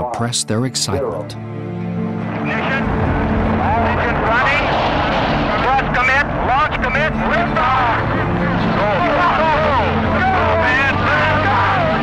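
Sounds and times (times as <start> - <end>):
rocket rumble at liftoff: 2.3 - 11.8
men shouting and cheering: 5.6 - 12.0.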